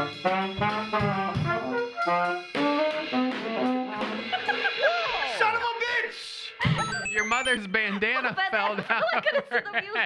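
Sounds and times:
jazz band trumpet and saxophone: 0:00.0 - 0:04.3
man laughing: 0:06.6 - 0:10.0.

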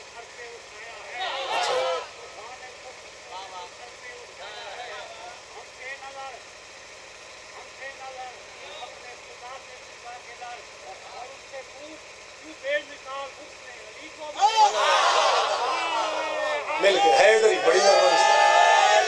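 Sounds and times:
faint murmuring voices: 0:00.0 - 0:12.6.

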